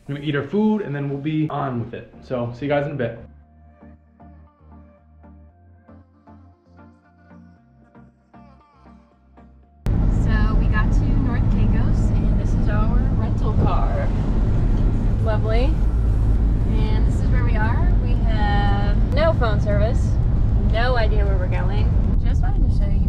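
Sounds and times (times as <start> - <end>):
people talking: 0.0 - 3.2, 10.2 - 14.1, 15.2 - 15.8, 16.7 - 23.0
quiet music: 0.0 - 9.1
car rumbling on dirt road: 9.9 - 23.0.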